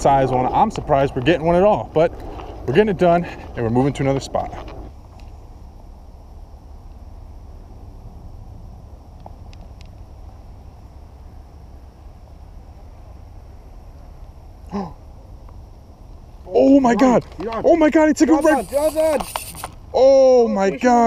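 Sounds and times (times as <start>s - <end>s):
faint hiss: 5.1s - 21.0s.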